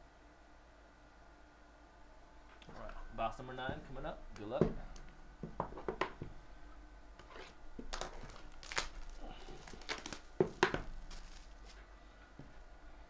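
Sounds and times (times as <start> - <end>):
plastic wrap ripping: 7.4 - 11.8
plastic wrap crinkling: 7.4 - 11.9.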